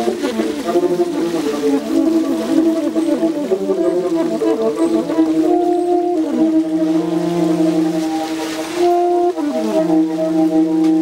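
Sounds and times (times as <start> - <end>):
bowed double bass: 0.0 - 11.0
saxophone long notes: 0.0 - 11.0.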